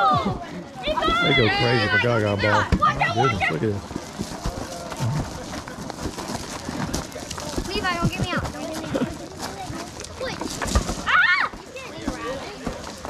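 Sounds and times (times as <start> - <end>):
ball and feet knocking: 2.6 - 13.0
children shouting: 11.0 - 11.8.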